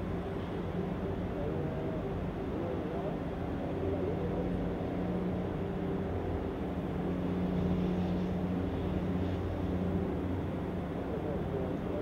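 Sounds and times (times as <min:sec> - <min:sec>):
low machinery drone: 0:00.0 - 0:12.0.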